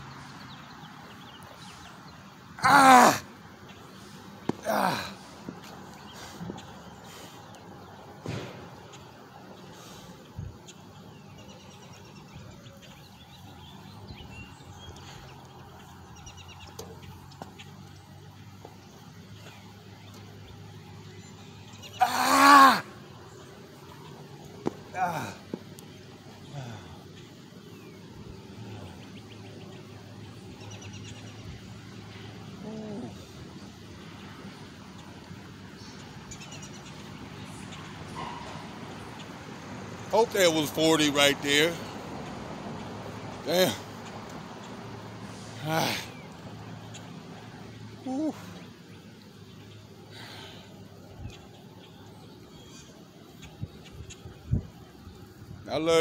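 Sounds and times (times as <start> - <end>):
man grunting with effort: 2.6 - 3.2, 4.6 - 5.2, 22.0 - 22.9, 24.9 - 25.4, 32.6 - 33.3, 45.6 - 46.2
man yelling with strain: 2.6 - 3.2, 4.6 - 5.1, 22.0 - 22.9, 24.9 - 25.4.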